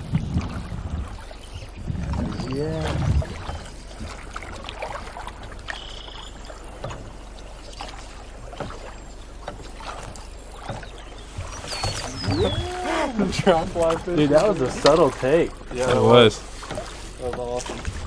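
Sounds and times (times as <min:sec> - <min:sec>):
low rumble: 0:00.0 - 0:09.4
water lapping against boat hull: 0:00.0 - 0:18.0
short high chirps: 0:05.7 - 0:06.4.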